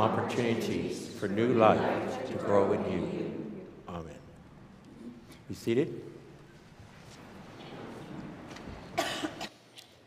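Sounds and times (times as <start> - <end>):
people rustling in seats: 6.3 - 10.0
short cough: 9.0 - 9.6.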